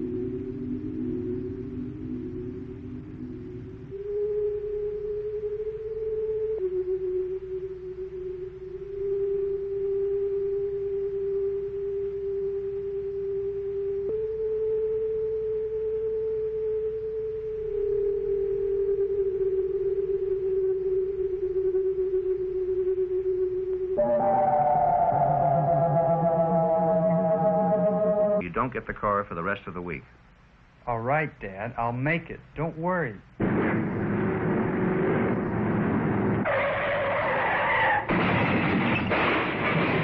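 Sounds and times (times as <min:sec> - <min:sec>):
pure electronic tone stepping pitch: 0:00.0 - 0:28.4
fainter high electronic tone: 0:00.0 - 0:28.6
full electronic chord: 0:06.6 - 0:28.4.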